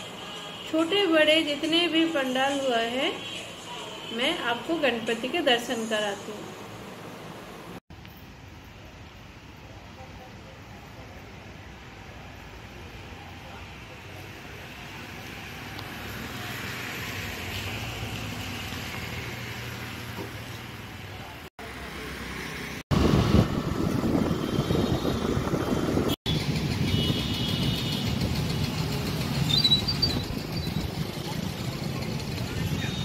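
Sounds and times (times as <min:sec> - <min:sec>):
vehicle noise: 0:09.3 - 0:33.0.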